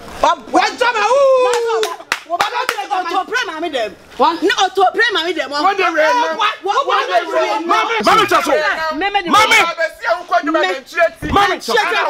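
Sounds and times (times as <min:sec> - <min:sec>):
person talking animatedly: 0:00.2 - 0:12.0
hand claps: 0:01.5 - 0:02.9.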